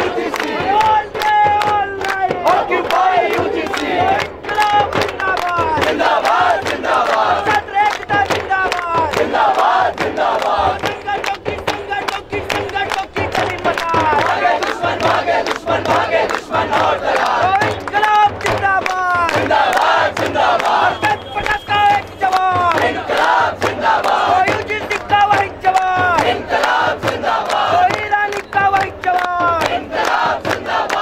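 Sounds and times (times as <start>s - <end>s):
crowd shouting slogans: 0.0s - 31.0s
fast beat of sharp strikes: 0.0s - 31.0s.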